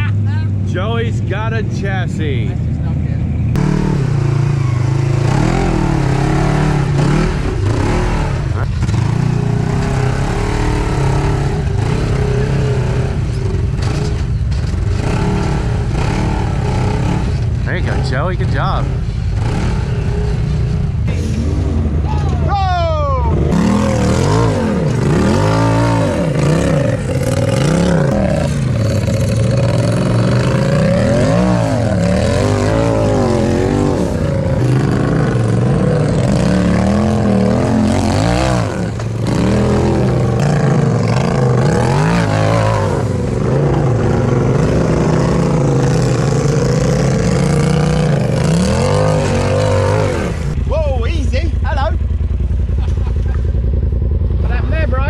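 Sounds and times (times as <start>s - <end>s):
utility vehicle engine revving: 0.0s - 55.0s.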